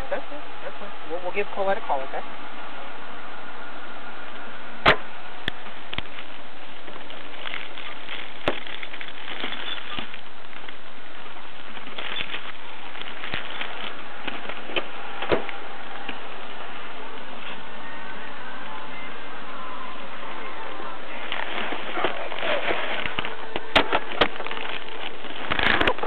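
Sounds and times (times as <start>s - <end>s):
recording hiss: 0.0s - 26.0s
sharp clicks and crackles: 4.8s - 10.8s, 11.6s - 16.2s, 21.2s - 26.0s.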